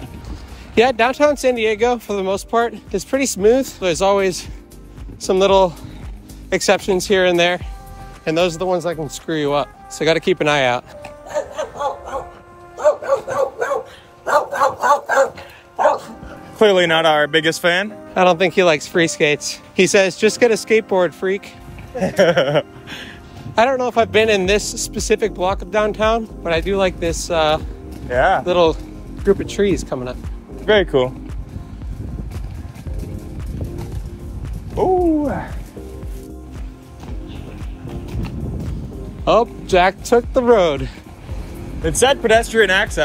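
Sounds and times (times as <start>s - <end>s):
background music: 0.0s - 43.0s
dog barking: 11.2s - 16.2s
wheels rolling on concrete: 24.9s - 43.0s.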